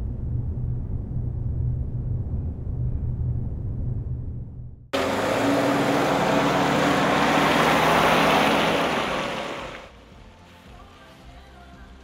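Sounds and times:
faint music: 0:09.9 - 0:12.0.

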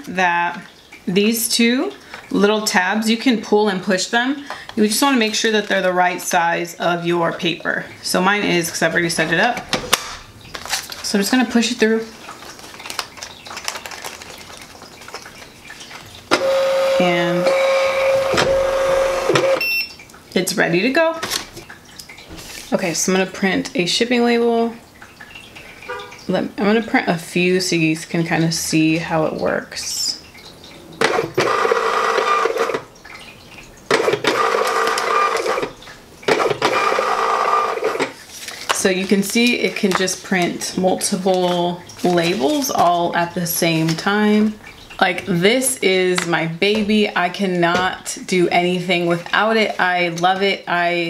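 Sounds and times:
label paper rustling and crackling: 0:09.9 - 0:16.2, 0:38.1 - 0:43.0
label printer motor whine: 0:16.3 - 0:19.6.

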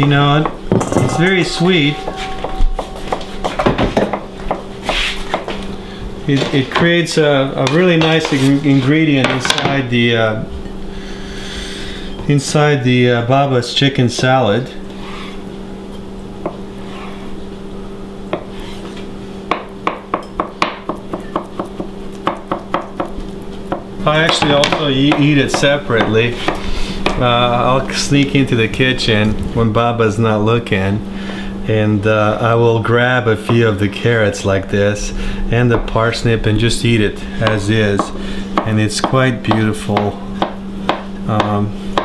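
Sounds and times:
low hum: 0:00.0 - 0:07.8, 0:33.3 - 0:38.9.

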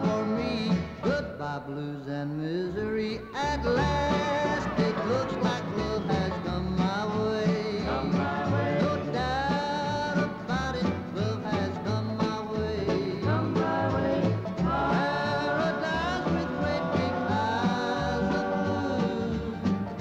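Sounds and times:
upright bass line: 0:00.0 - 0:01.4, 0:02.8 - 0:20.0
acoustic guitars picking: 0:00.0 - 0:20.0.

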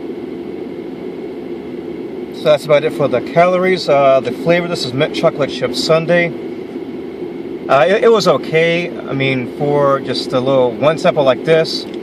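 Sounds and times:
car interior hum: 0:00.0 - 0:12.0
ventilation fan droning: 0:00.0 - 0:12.0.

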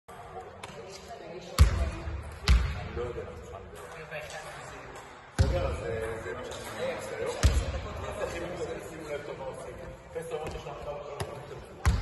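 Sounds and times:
murmur of voices: 0:00.1 - 0:12.0
basketball bouncing on hall floor: 0:01.6 - 0:02.9, 0:07.4 - 0:07.8, 0:11.2 - 0:12.0.

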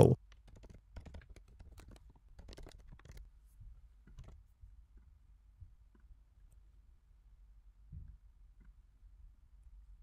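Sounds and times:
typing on computer keyboard: 0:00.2 - 0:03.3, 0:04.0 - 0:04.4.

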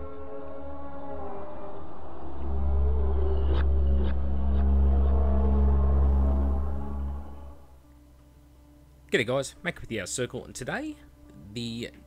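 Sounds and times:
cinematic music with bass drone: 0:00.0 - 0:09.1.

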